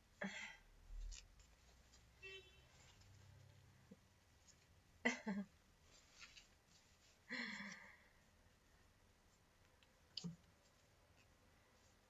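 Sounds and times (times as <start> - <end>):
faint scratchy rustling: 0.9 - 4.9, 5.7 - 7.3, 9.2 - 12.0.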